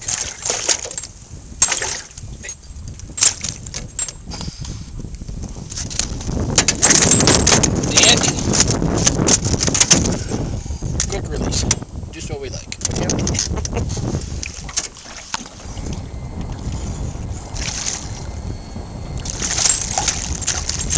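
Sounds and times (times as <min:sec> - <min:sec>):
fish flopping in metal boat: 0:00.0 - 0:04.8, 0:05.4 - 0:11.9, 0:12.7 - 0:20.9.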